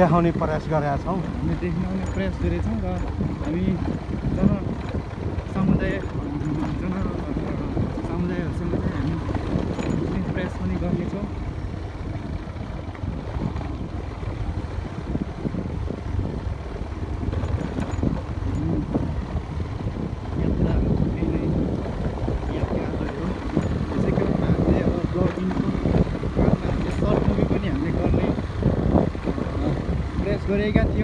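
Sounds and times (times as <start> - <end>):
motorcycle engine at low speed: 0.0 - 31.0
wind buffeting microphone: 0.0 - 31.0.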